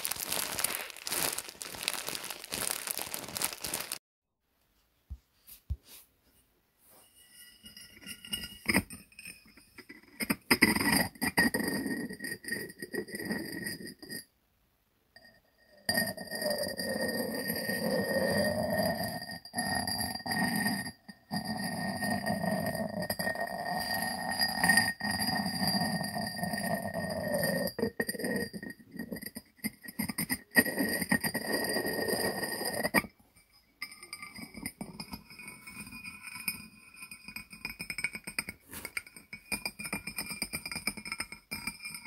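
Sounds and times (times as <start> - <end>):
ceramic lid grinding on jar rim: 15.9 - 33.1, 33.8 - 42.0.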